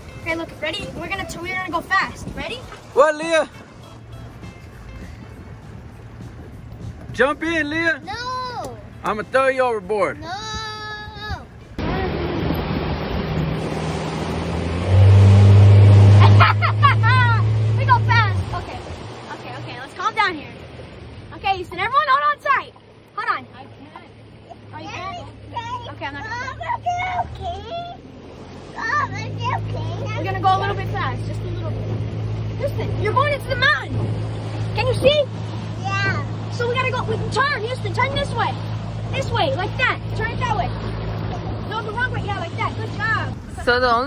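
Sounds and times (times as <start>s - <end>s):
motorboat engine running: 0.0s - 44.0s
wind and water rushing: 0.0s - 44.0s
boy yelling: 8.0s - 8.9s, 10.2s - 11.5s, 16.2s - 18.8s, 24.8s - 28.0s, 28.7s - 31.2s
children calling: 21.4s - 43.4s.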